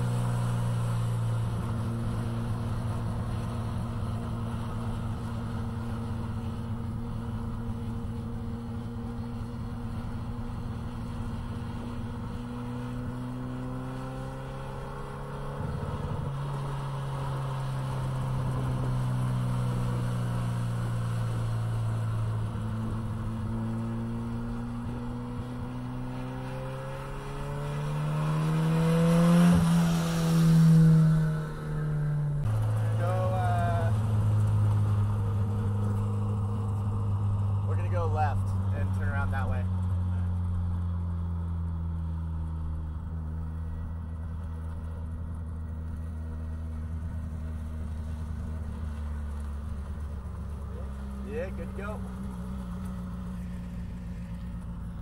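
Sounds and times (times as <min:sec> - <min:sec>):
car engine passing by: 0:11.0 - 0:55.0.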